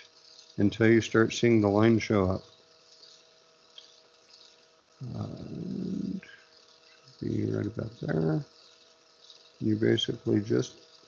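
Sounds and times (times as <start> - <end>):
steady low hum: 0.0 - 11.0
tiny ticks: 0.0 - 11.0.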